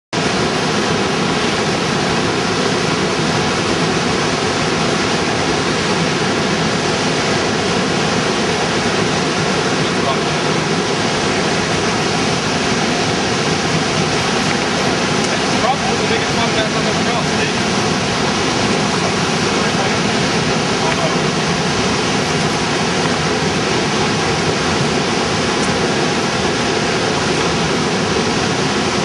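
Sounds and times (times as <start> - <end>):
wind and water rushing: 0.2 - 29.0.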